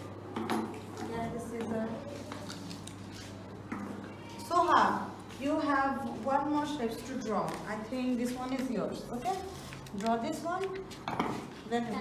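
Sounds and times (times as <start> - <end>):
paper and scissors clicks and rustles: 2.1 - 3.4, 7.1 - 12.0.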